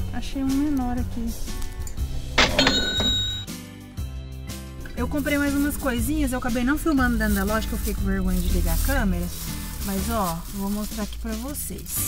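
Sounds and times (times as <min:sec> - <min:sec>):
light background music: 0:00.0 - 0:12.0
cash register ka-ching: 0:02.4 - 0:03.5
bell ringing: 0:02.4 - 0:03.6.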